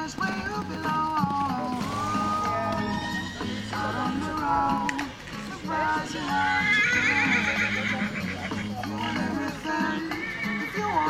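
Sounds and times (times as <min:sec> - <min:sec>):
background pop music: 0:00.0 - 0:11.0
horse whinnying: 0:01.4 - 0:05.2, 0:05.8 - 0:11.0.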